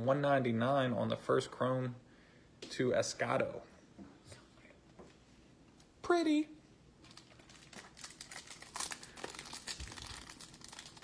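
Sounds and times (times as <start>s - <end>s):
foil wrapper crinkling and tearing: 7.0s - 11.0s.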